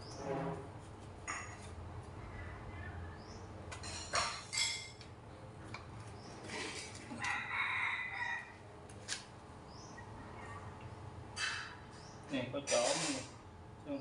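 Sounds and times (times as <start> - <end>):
rooster crowing: 7.2 - 8.7.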